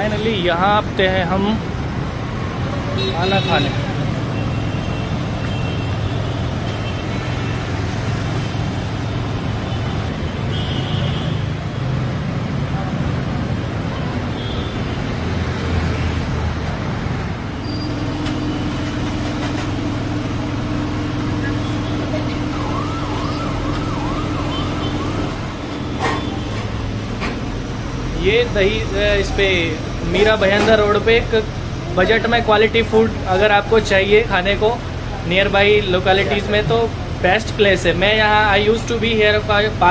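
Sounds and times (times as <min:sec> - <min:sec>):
city road traffic: 0:00.0 - 0:39.9
emergency siren wailing: 0:17.9 - 0:26.9.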